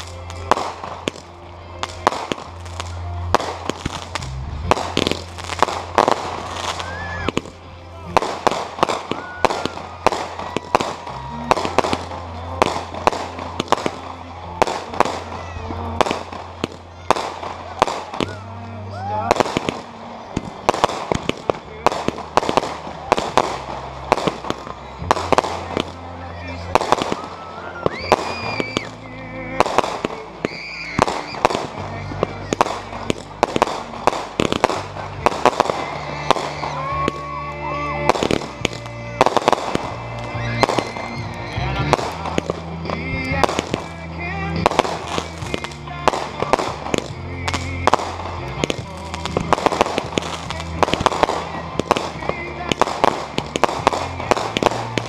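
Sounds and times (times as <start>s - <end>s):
fireworks bangs and crackling: 0.0s - 55.0s.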